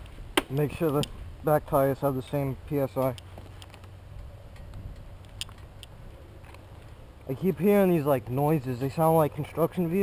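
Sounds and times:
distant engines rumbling: 0.0s - 10.0s.

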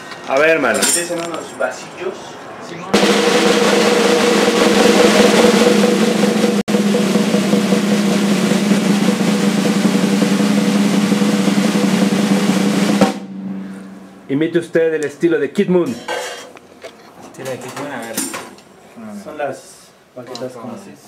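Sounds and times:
snare drum roll: 2.9s - 13.3s.

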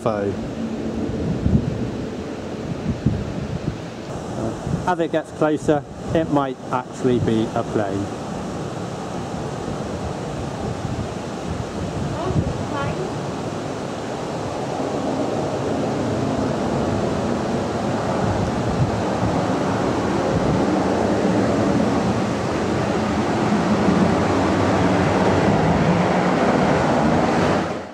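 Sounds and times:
airliner engines rumbling: 0.0s - 27.9s
wind noise on microphone: 0.0s - 27.9s.

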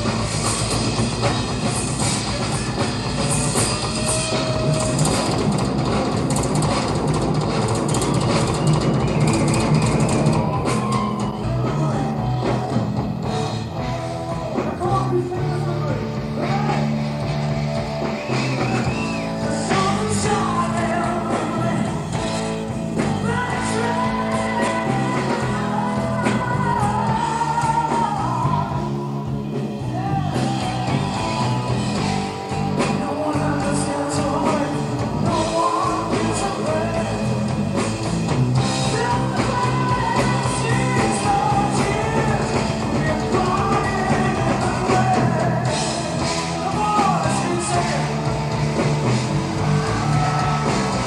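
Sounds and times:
bass guitar: 0.0s - 51.0s
drums: 0.0s - 51.0s
electric guitar: 0.0s - 51.0s
hard rock band playing live: 0.0s - 51.0s.

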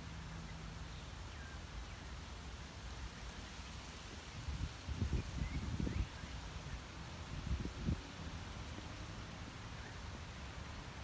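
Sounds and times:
wind buffeting microphone: 4.1s - 8.5s.

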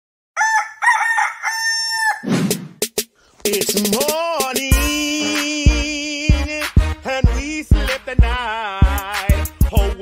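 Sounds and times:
rooster crowing: 0.4s - 2.3s.

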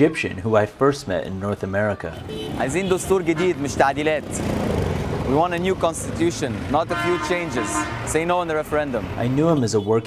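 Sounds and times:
people talking: 0.0s - 4.4s, 5.3s - 10.0s
street traffic: 0.0s - 10.0s.

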